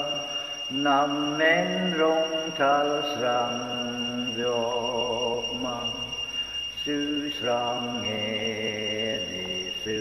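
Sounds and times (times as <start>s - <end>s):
faint high-pitched whine: 0.0s - 10.0s
man singing a hymn unaccompanied: 0.0s - 10.0s.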